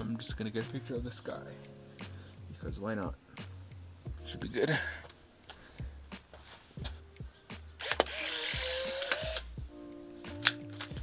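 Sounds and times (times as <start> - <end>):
camera shutter snapping: 7.8 - 9.5, 10.3 - 11.0
film-ejection motor whirring: 7.8 - 9.5
light camera clicks: 7.8 - 9.5, 10.4 - 10.9.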